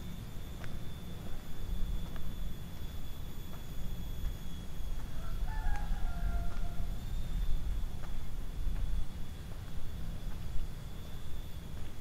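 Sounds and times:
low background rumble: 0:00.0 - 0:12.0
rooster crowing: 0:04.8 - 0:07.7.

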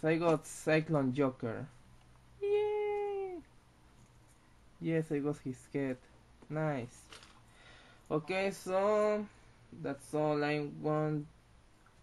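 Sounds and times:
person speaking: 0:00.0 - 0:01.8, 0:02.4 - 0:03.5, 0:04.8 - 0:07.2, 0:08.1 - 0:11.4
high-pitched voiced call: 0:02.4 - 0:03.5.

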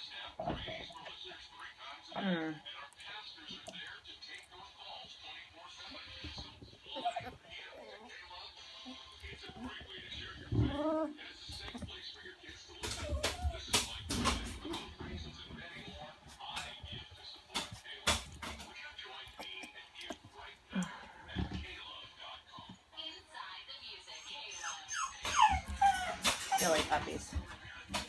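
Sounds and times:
puppies rustling on blanket: 0:02.9 - 0:28.0
puppy whimpers: 0:06.8 - 0:11.8, 0:12.7 - 0:14.9, 0:19.3 - 0:20.2, 0:24.2 - 0:27.2.

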